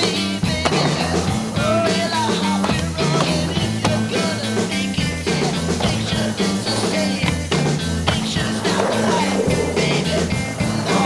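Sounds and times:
rock music with drums and guitar: 0.0 - 11.0
skateboard wheels rolling on concrete: 0.0 - 11.0.

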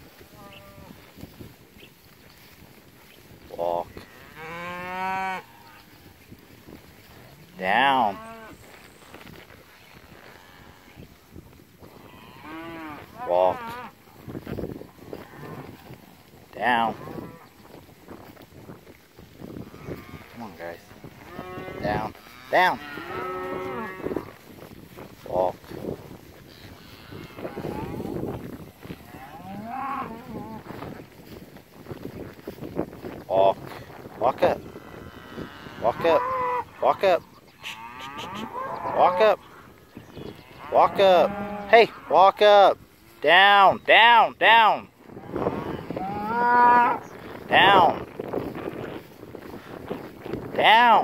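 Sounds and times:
cow mooing: 19.7 - 24.3, 34.4 - 39.4, 40.3 - 42.2, 45.2 - 47.8.

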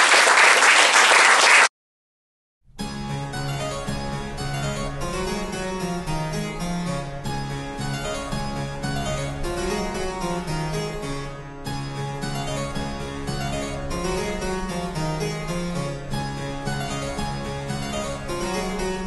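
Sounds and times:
harpsichord piece: 2.8 - 19.0.

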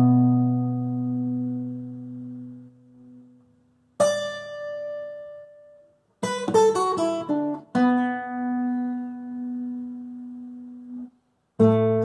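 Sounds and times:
acoustic guitar plucked note: 0.0 - 3.4.

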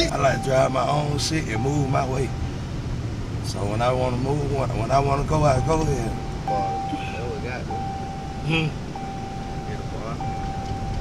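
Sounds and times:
steady high-pitched tone: 0.0 - 2.5, 5.3 - 11.0
road and engine noise: 0.0 - 11.0.

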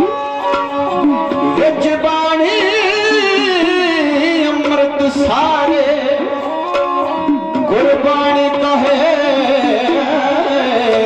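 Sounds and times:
small hand drums: 0.0 - 11.0.

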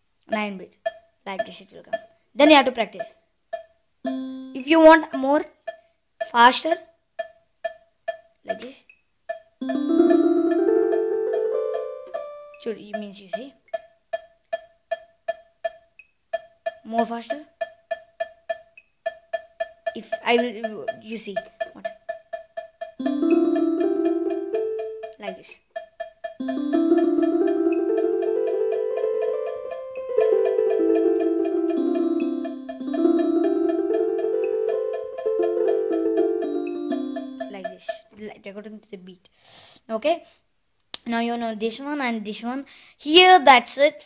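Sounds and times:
metronome ticking: 0.3 - 38.2
electronic keyboard melody: 4.1 - 4.9, 9.6 - 12.7, 23.0 - 25.2, 26.4 - 37.6
fast repeating keyboard beat: 4.1 - 4.9, 9.6 - 12.6, 19.6 - 25.2, 25.8 - 37.8
higher-pitched accent beep: 4.1 - 4.9.

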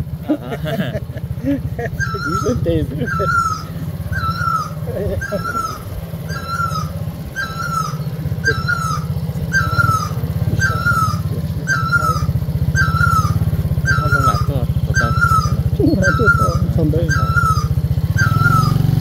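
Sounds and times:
scooter engine running: 0.0 - 19.0
high chirping squeak: 2.0 - 18.8.

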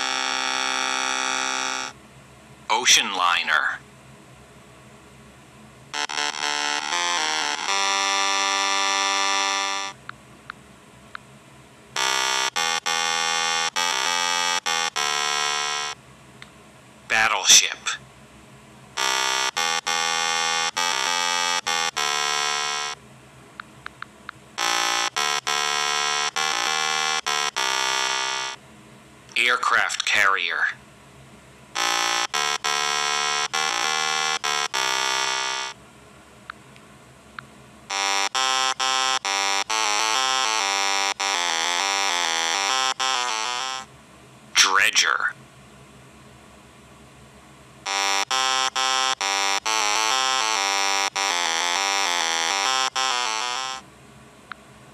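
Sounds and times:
buzzy electronic alarm tone: 0.0 - 2.0, 5.9 - 10.0, 12.0 - 16.0, 19.0 - 23.0, 24.6 - 28.6, 31.8 - 35.8, 37.9 - 43.9, 47.8 - 53.8.

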